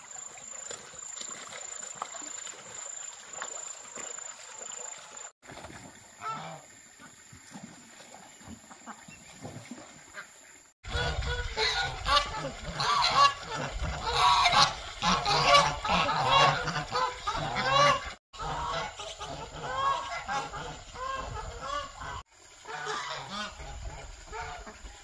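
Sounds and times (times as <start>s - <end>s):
ducks and geese calling: 10.1s - 25.0s.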